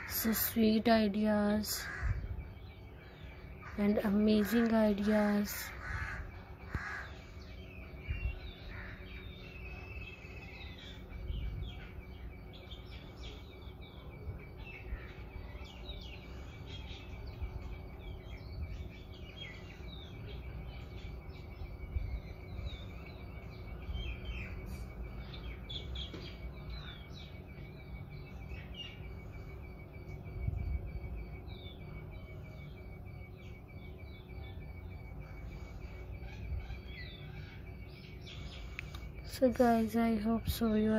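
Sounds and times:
small birds chirping: 0.0s - 40.9s
thin steady high tone: 6.4s - 40.9s.

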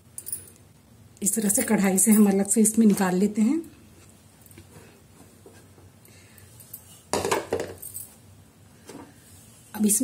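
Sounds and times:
dishes clattering: 7.1s - 7.9s.

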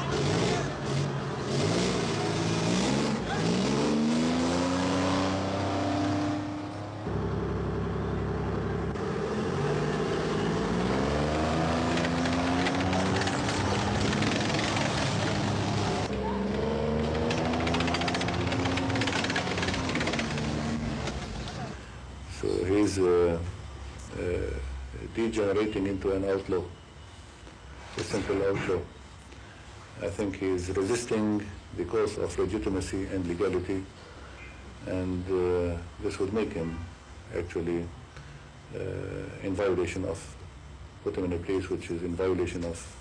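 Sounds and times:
vehicle engines accelerating: 0.0s - 21.9s.

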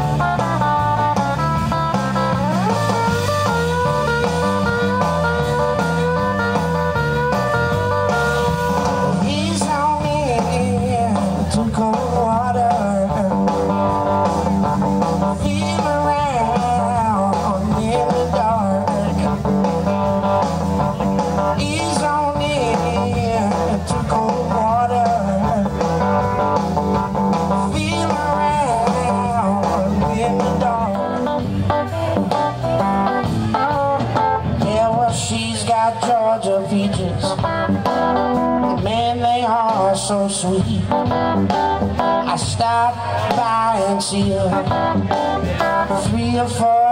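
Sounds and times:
electric guitar bending notes: 0.0s - 46.9s
live blues band playing: 0.0s - 46.9s.

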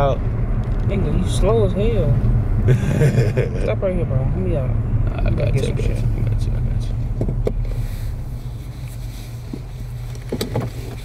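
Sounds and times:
car cabin engine and road rumble: 0.0s - 11.0s
clicks and knocks inside car: 7.1s - 7.7s, 9.5s - 11.0s.

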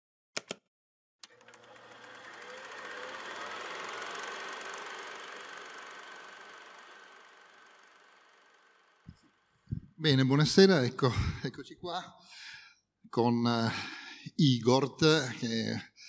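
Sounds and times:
machine-like whirr with fast ticking: 1.2s - 9.7s.

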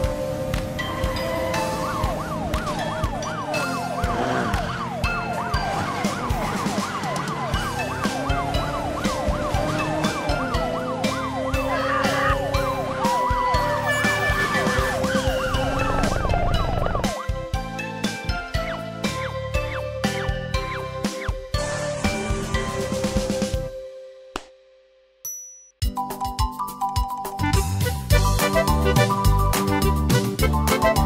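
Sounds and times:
police siren wailing: 0.0s - 17.6s
background music: 0.0s - 24.8s, 25.8s - 31.0s.

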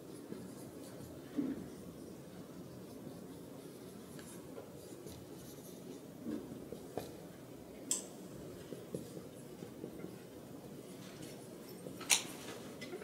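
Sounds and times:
marker scratching on whiteboard: 0.0s - 7.3s, 8.6s - 12.0s.

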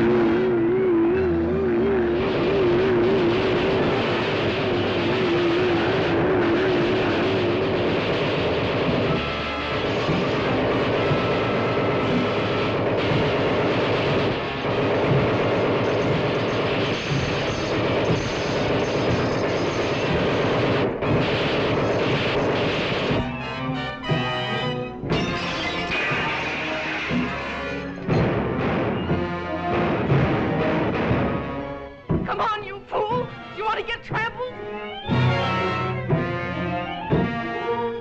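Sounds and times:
orchestral cartoon music: 0.0s - 38.0s
gunfire sound effects: 2.2s - 24.2s
mechanical robot sound effects: 25.1s - 27.7s.

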